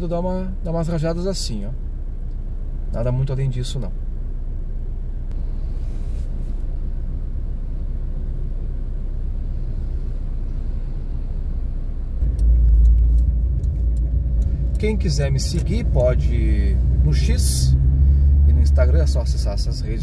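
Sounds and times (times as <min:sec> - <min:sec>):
low rumble inside a car: 0:00.0 - 0:20.0.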